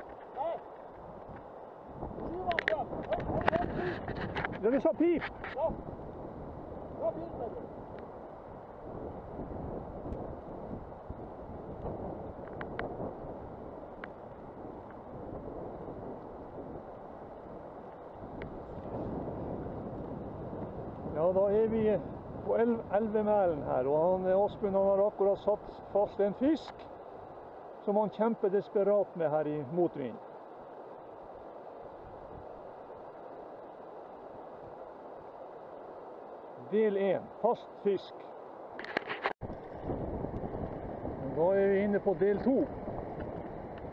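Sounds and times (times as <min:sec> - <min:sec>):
wind buffeting microphone: 0:00.0 - 0:28.4, 0:29.6 - 0:36.8, 0:38.6 - 0:43.9.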